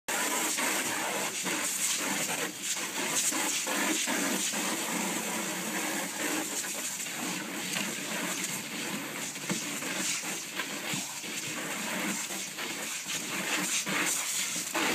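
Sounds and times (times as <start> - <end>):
hose spraying water: 0.1 - 14.9
water splashing: 0.1 - 14.9.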